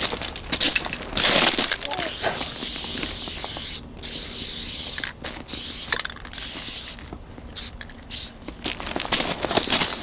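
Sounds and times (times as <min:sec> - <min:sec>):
spray paint can hissing: 0:02.0 - 0:08.4, 0:09.5 - 0:10.0.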